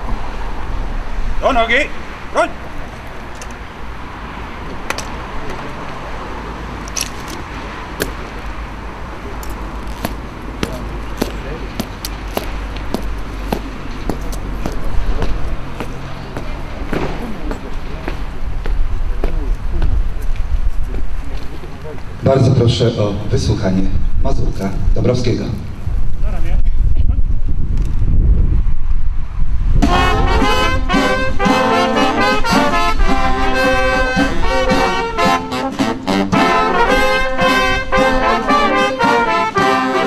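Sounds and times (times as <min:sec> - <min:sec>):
rifles being handled: 0:06.8 - 0:08.2, 0:09.4 - 0:11.4
crowd murmuring: 0:09.1 - 0:22.2, 0:29.9 - 0:40.0
boots on stone paving: 0:09.4 - 0:21.5.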